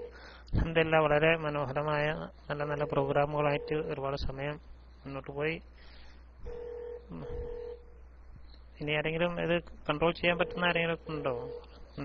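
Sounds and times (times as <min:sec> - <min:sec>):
electronic beeps: 0:10.4 - 0:12.0.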